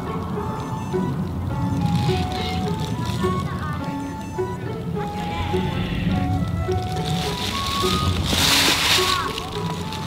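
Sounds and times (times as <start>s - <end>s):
slow melody of held notes: 0.0s - 10.0s.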